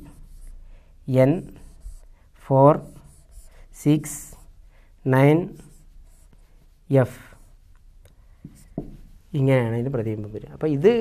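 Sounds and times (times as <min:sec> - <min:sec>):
marker pen writing on whiteboard: 0:00.0 - 0:04.6, 0:05.2 - 0:09.5
man speaking: 0:05.0 - 0:05.7, 0:06.9 - 0:07.4, 0:09.3 - 0:11.0.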